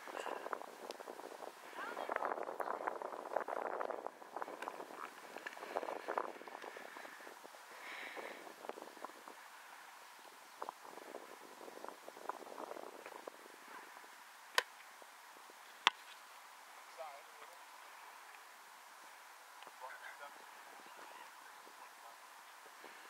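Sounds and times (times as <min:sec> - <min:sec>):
faint outdoor background: 0:00.0 - 0:23.0.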